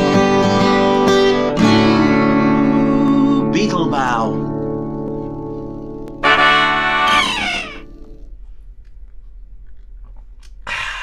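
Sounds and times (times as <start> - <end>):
acoustic guitar note sliding down: 0.0 - 8.3
low room noise: 0.0 - 11.0.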